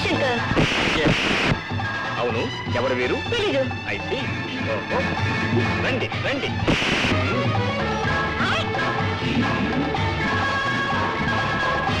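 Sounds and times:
film score with held tones: 0.0 - 12.0.

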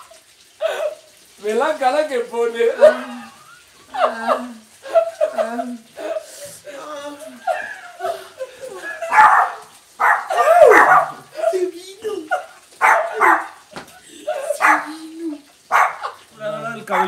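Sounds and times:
person yelping and screaming: 2.8 - 3.4, 8.8 - 16.8.

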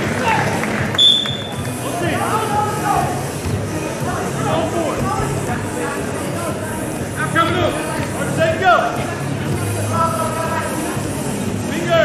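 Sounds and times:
referee's whistle: 1.0 - 1.6.

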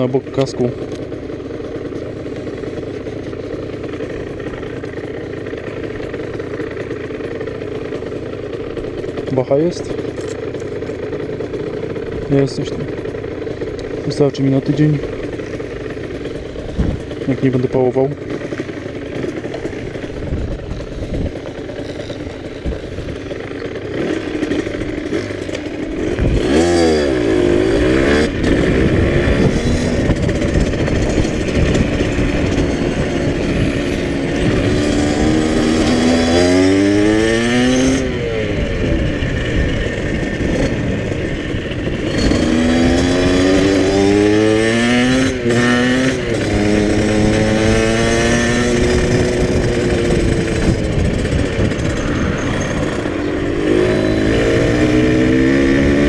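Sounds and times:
dirt bike engine accelerating: 0.0 - 56.0.

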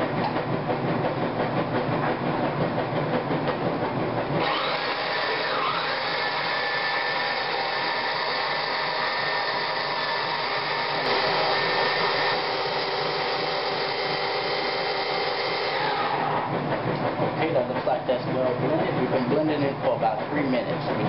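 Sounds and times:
food processor motor whine: 4.3 - 17.1.

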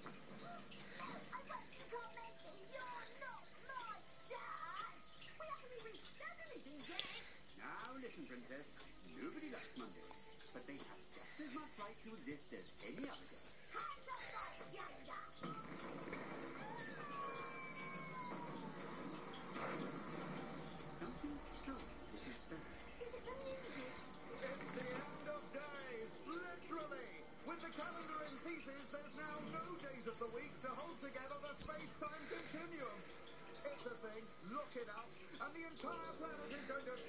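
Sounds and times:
cartoon music: 14.8 - 19.8.

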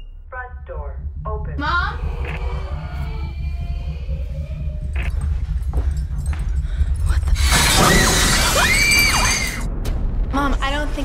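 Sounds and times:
deep rumbling drone: 0.0 - 11.0.

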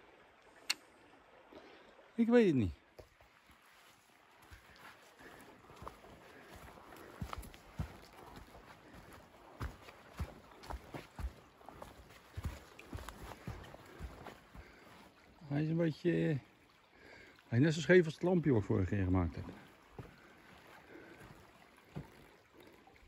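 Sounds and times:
stream running: 0.0 - 23.0
footsteps on dirt path: 3.0 - 15.3, 19.4 - 22.3.

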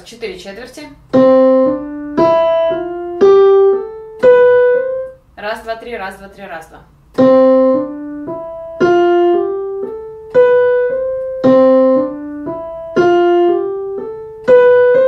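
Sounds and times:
piano melody on digital keyboard: 1.0 - 5.5, 7.1 - 15.0.

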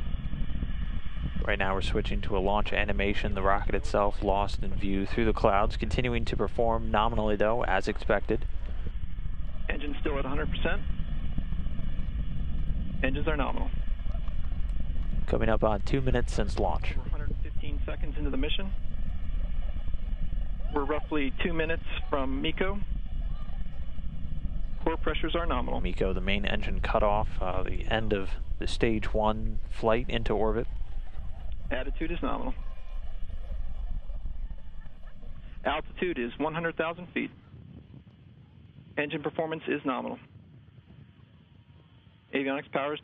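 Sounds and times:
distant rocket engines rumbling: 0.0 - 42.8.

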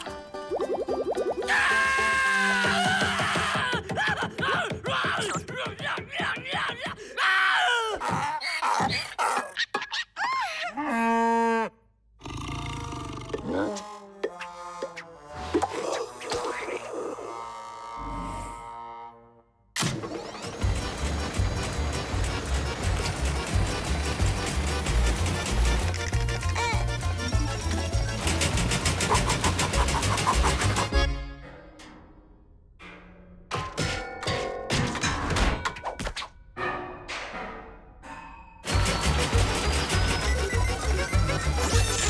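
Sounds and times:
fast mechanical rattle: 19.9 - 26.6, 27.2 - 30.9, 38.7 - 41.6.

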